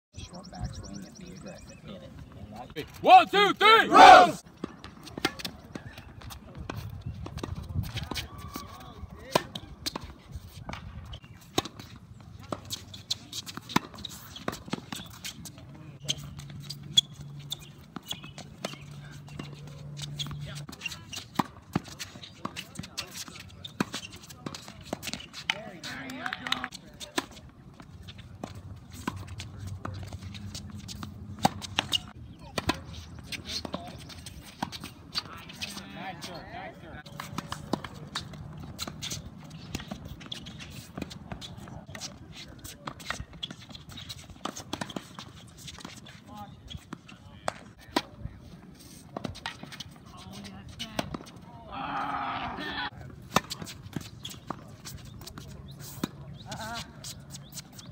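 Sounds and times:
tennis balls bouncing on court: 3.9s - 36.4s, 37.0s - 48.2s, 53.0s - 57.9s
tennis balls struck by rackets: 9.2s - 35.8s, 37.1s - 46.1s, 53.0s - 57.9s.

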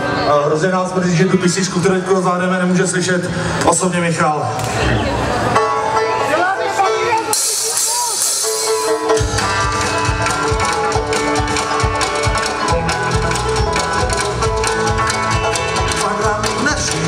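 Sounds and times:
country band playing: 0.0s - 17.0s
bass guitar: 4.5s - 17.0s
plucked banjos: 5.5s - 17.0s
steady drum beat: 7.2s - 17.0s.

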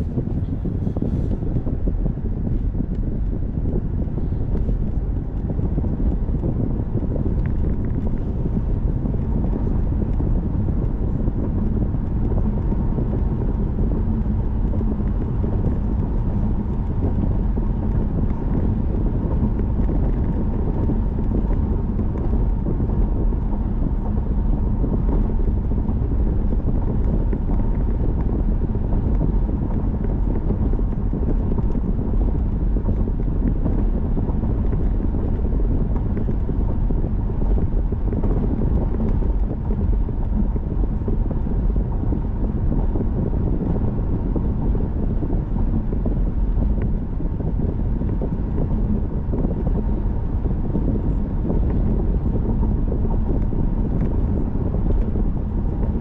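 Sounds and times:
tyre and road noise: 0.0s - 56.0s
wind: 0.0s - 56.0s.

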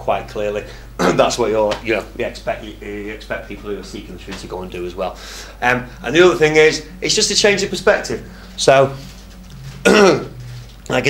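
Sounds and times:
man speaking: 0.0s - 9.1s, 9.9s - 11.0s
man clearing his throat: 9.8s - 10.4s.

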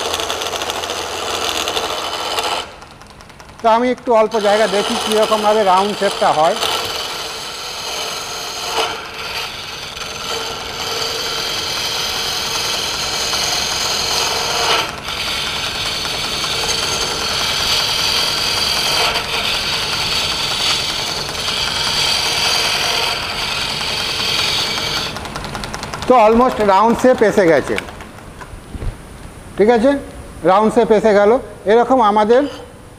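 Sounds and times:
chisel scraping wood on lathe: 0.0s - 28.5s.

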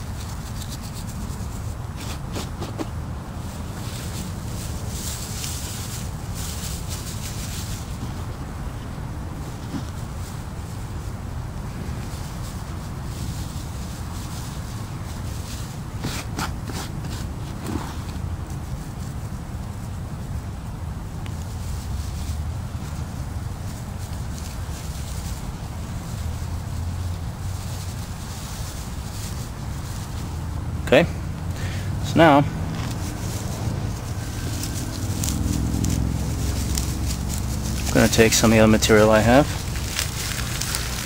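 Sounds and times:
sharp crinkles: 0.0s - 8.4s, 9.4s - 20.3s, 21.2s - 30.6s, 32.7s - 41.0s
rustling of dry grass fibres: 0.0s - 41.0s
wind rumble on microphone: 0.0s - 41.0s.

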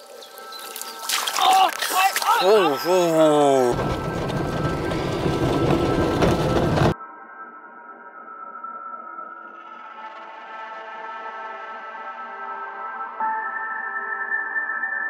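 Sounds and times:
car driving on dirt road rumble: 3.0s - 7.0s.

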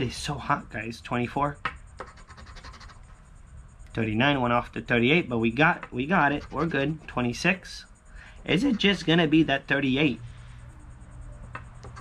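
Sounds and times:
coin scratching lottery ticket: 2.0s - 3.1s, 6.0s - 7.4s, 11.4s - 12.0s.

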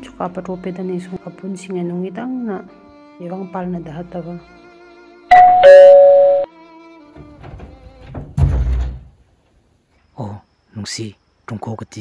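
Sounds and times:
two-tone doorbell chime: 5.3s - 6.5s.

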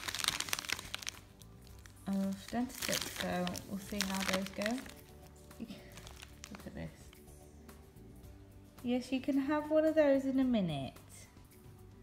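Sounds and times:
plastic packet crinkling: 0.0s - 7.3s
faint background music: 0.0s - 12.0s.

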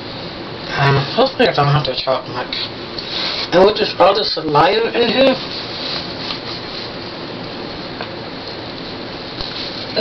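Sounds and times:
steady rushing hiss: 0.0s - 10.0s.

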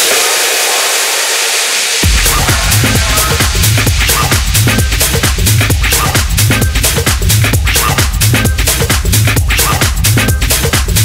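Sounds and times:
hissing noise wash: 0.0s - 5.8s.

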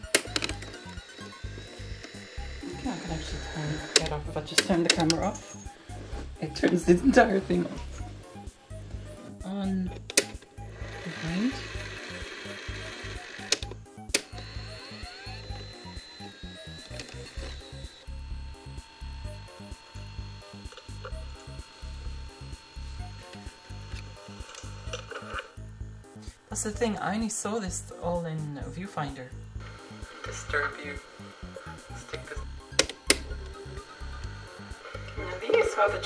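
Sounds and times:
tape mechanism whirring: 0.0s - 27.1s, 29.6s - 36.0s
music with steady low beat: 0.0s - 36.0s
recorder buttons clicking: 3.7s - 5.6s, 31.6s - 33.6s.

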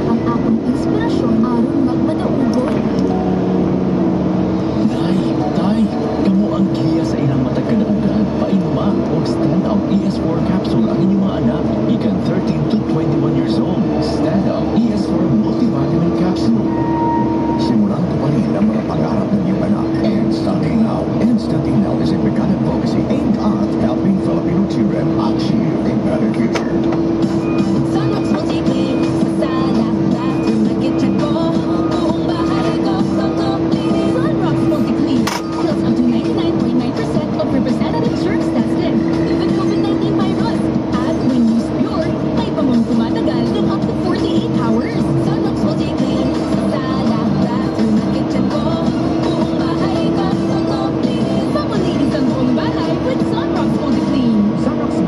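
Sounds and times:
engine drone: 0.0s - 55.0s
music playing: 0.0s - 55.0s.

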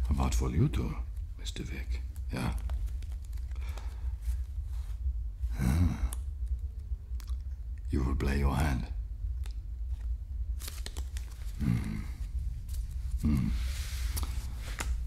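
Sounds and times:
low rumble: 0.0s - 15.0s
playing cards clicking: 2.0s - 4.0s, 9.4s - 11.9s, 14.1s - 15.0s
man making wordless vocal sounds: 5.5s - 6.2s, 11.6s - 12.4s, 13.2s - 13.8s.

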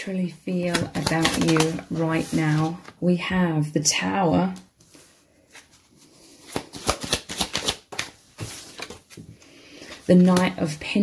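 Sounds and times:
cards shuffled by hand: 0.6s - 2.9s, 4.8s - 10.7s.

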